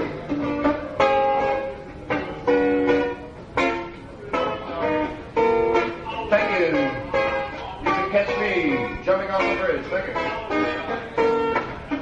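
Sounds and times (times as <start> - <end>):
guitar backing: 0.0 - 12.0.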